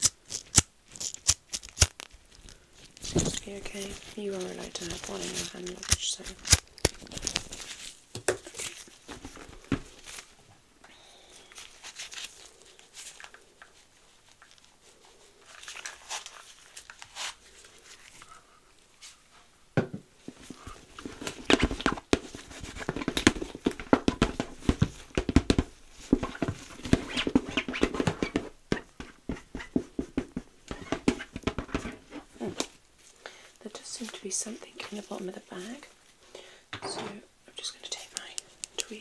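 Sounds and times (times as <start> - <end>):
gloved hands rubbing leather bag: 3.3 - 8.0.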